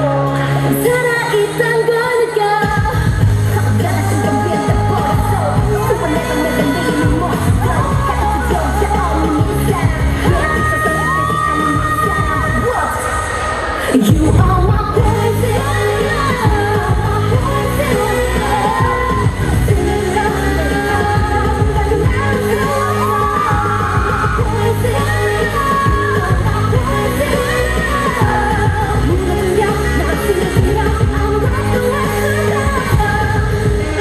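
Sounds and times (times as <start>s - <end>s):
pop dance track with female singing: 0.0s - 34.0s.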